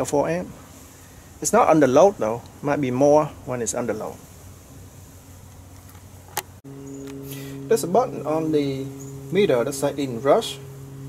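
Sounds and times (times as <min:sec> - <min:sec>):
electric motor humming: 0:06.6 - 0:11.0.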